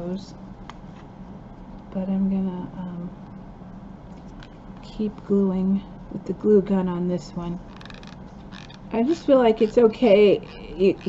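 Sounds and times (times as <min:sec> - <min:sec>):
faint clicks and rustles: 0:04.0 - 0:05.4, 0:07.5 - 0:11.0.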